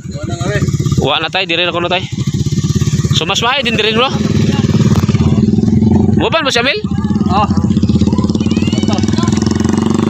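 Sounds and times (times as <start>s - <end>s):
small motorcycle engine running: 0.0s - 10.0s.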